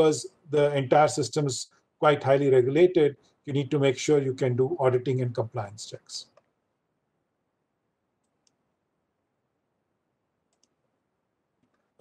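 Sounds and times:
faint clicks: 8.2s - 8.6s, 10.5s - 10.8s.

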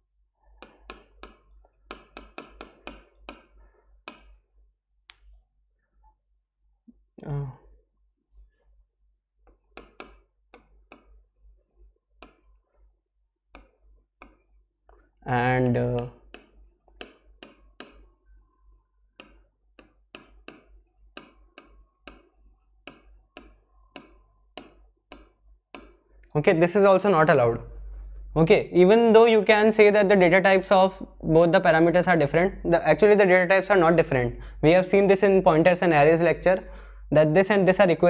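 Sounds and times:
pen tapping on hard surface: 0.6s - 4.4s, 9.5s - 11.2s, 13.5s - 14.5s, 15.6s - 18.1s, 19.2s - 26.1s.

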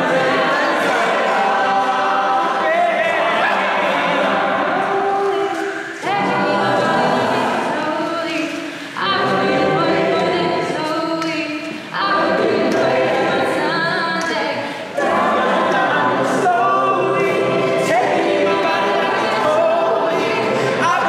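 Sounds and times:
a cappella choir singing: 0.0s - 21.0s.

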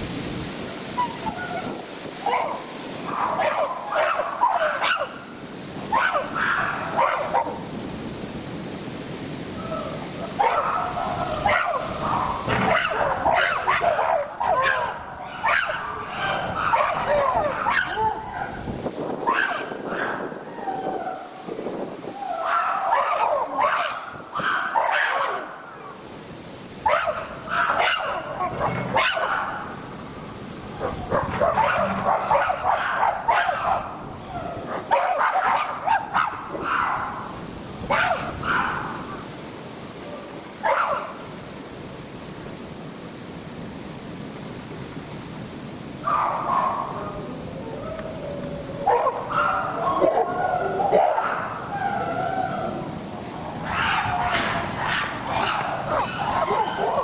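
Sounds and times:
chimpanzees calling: 53.6s - 57.0s.

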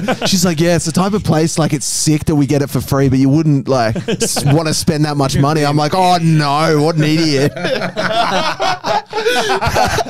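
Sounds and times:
men laughing hard: 0.0s - 0.4s, 3.9s - 4.7s, 6.9s - 10.0s.

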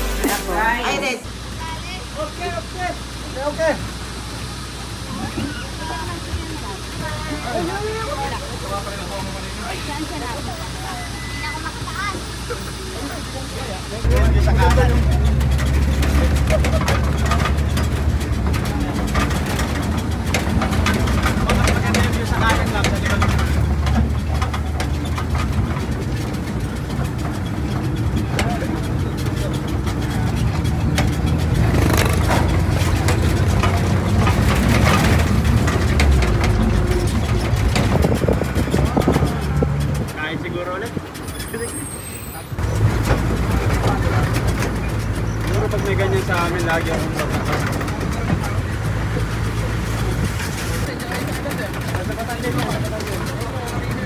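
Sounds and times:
vehicle engine running: 0.0s - 54.0s
voices: 0.0s - 54.0s.

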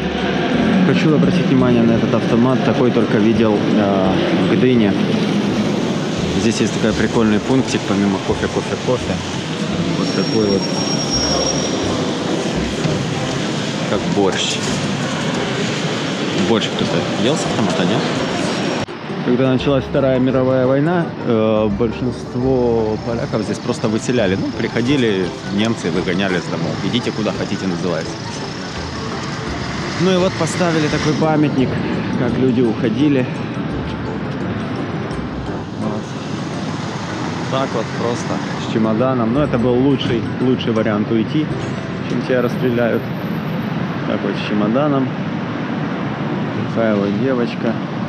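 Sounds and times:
railway station hall din: 0.0s - 19.5s, 22.8s - 32.4s, 33.2s - 39.3s, 41.0s - 48.0s
road vehicles humming: 0.0s - 48.0s.

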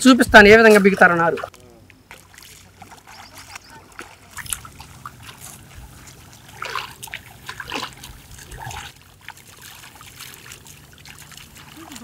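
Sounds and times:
muddy water splashing and trickling: 0.0s - 12.0s
short water splashes: 0.5s - 12.0s.

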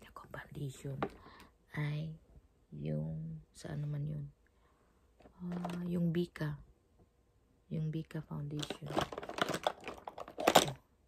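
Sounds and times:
makeup containers knocking together: 8.6s - 10.8s.

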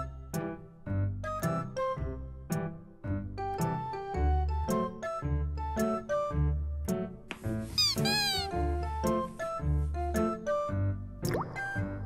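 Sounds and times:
background music: 0.0s - 12.0s
cat meow: 7.8s - 8.6s.

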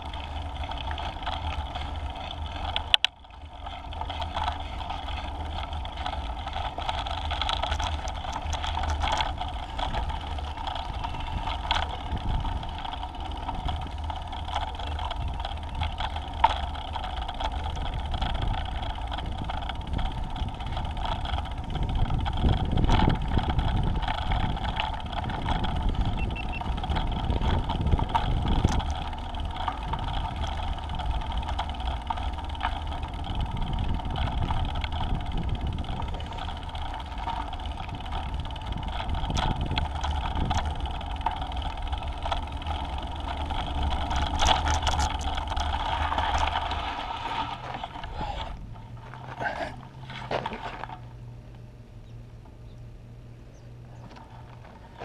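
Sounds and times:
small clicks and rattles: 0.0s - 52.9s, 53.5s - 55.0s
scooter wheels rumbling on pavement: 0.0s - 55.0s
wind on microphone: 37.8s - 41.1s.

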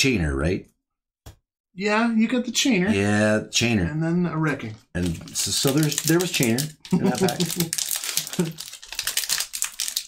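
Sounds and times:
foil wrapper crackling and tearing: 5.0s - 10.0s.

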